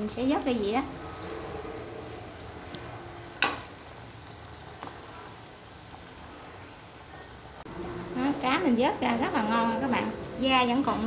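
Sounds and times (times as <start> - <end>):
broth bubbling in a pot: 0.0 - 11.0.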